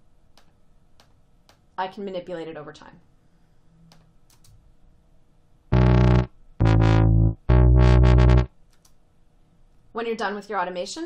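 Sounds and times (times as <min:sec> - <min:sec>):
synth notes with wobble: 0:05.7 - 0:08.5.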